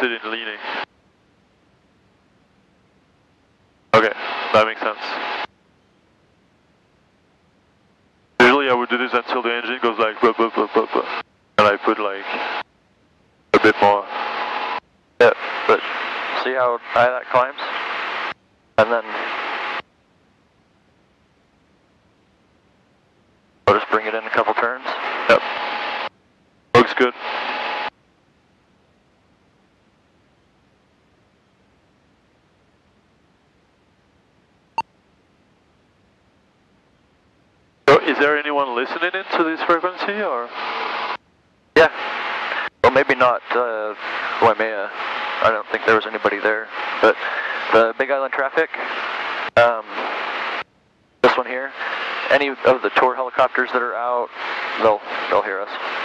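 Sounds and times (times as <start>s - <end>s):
voices over radio: 0.0s - 0.8s, 4.0s - 5.5s, 8.4s - 12.6s, 13.6s - 14.2s, 15.2s - 18.0s, 18.8s - 19.4s, 23.7s - 25.6s, 26.8s - 27.7s, 37.9s - 41.2s, 41.8s - 50.6s, 51.2s - 56.0s.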